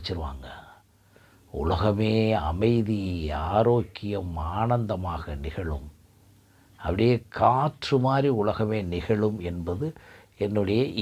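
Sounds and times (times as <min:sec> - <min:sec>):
man speaking: 0:00.0 - 0:00.8, 0:01.5 - 0:06.0, 0:06.8 - 0:11.0.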